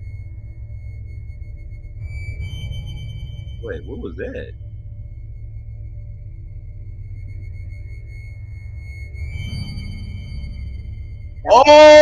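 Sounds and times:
eerie ambient drone music: 0.0 - 12.0.

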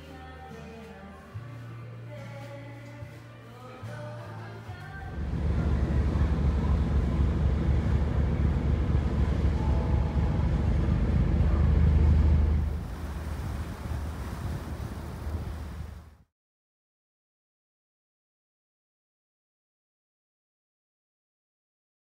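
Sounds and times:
water and boat traffic: 5.1 - 16.3
wind rumbling on microphone: 5.1 - 16.3.

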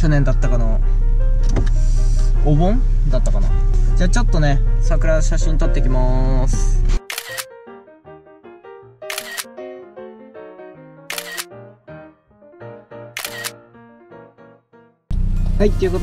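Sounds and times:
background music melody: 0.0 - 16.0
camera shutter click: 7.1 - 7.5, 9.1 - 9.5, 11.1 - 11.5, 13.2 - 13.6.

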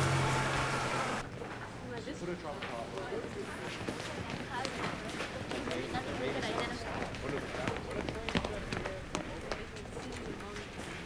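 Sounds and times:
murmur of voices: 1.8 - 11.0
footsteps: 2.6 - 11.0.

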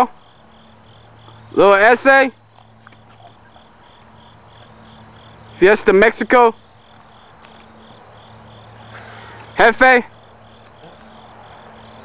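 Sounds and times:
cricket chirping: 0.0 - 12.0
faint low background hum: 0.0 - 12.0.

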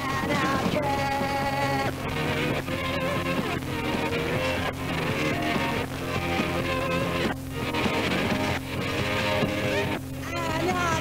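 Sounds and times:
rock music with electric guitar: 0.0 - 11.0.

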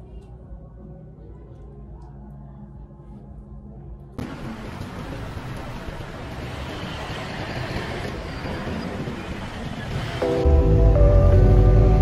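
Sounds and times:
music with strong bass line: 10.2 - 12.0.

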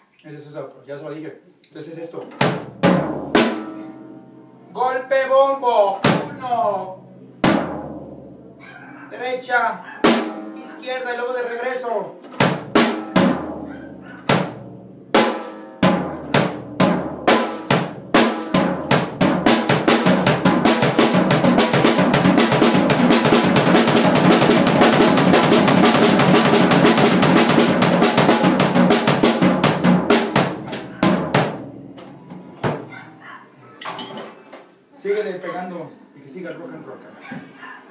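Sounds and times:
drum kit played with sticks: 2.2 - 4.4, 5.8 - 8.6, 10.0 - 10.8, 12.2 - 33.0.

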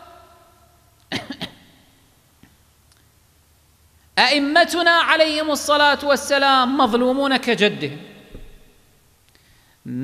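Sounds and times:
person coughing: 1.1 - 1.6.

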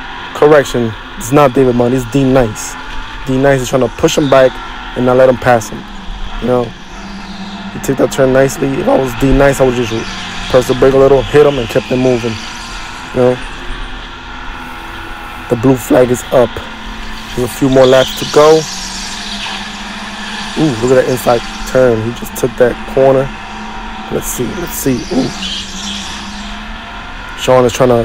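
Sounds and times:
faint steady tones: 0.0 - 28.0
faint tyre squeal: 0.0 - 28.0
go-kart engine hum: 0.0 - 28.0.

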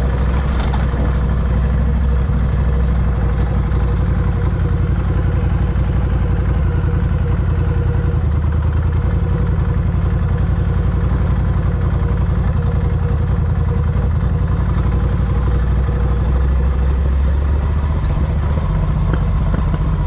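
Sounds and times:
motorcycle engine running: 0.0 - 20.0.

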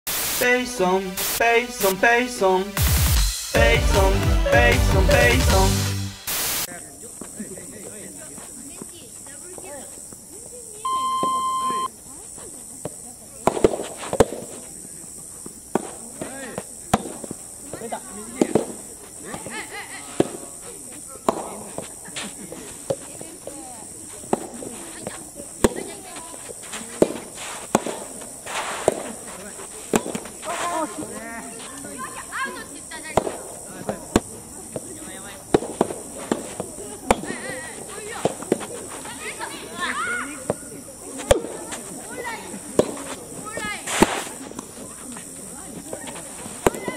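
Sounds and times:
voices calling: 6.6 - 12.7
voices in background: 6.6 - 46.9
flat electronic beep: 10.8 - 11.9
racket hitting tennis ball: 26.7 - 30.3, 35.5 - 37.4, 43.9 - 44.6
tennis ball struck by rackets: 27.0 - 29.2, 33.1 - 34.3, 42.8 - 43.1, 43.9 - 44.3.

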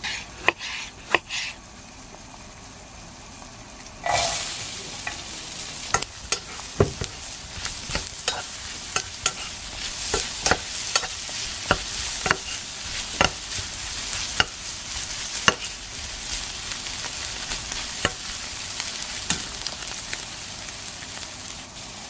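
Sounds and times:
food sizzling in a pan: 0.0 - 22.0
utensil scraping a pan: 5.9 - 18.6.

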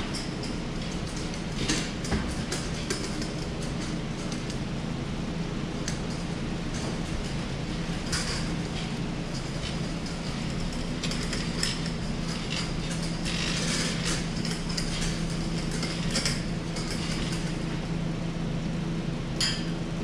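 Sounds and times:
steady low hum: 0.0 - 20.0
wheel dollies rolling on concrete: 5.8 - 17.8.

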